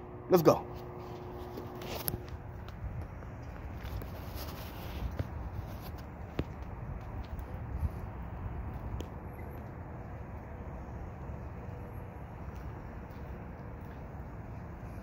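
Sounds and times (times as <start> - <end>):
footsteps outdoors: 0.0 - 15.0.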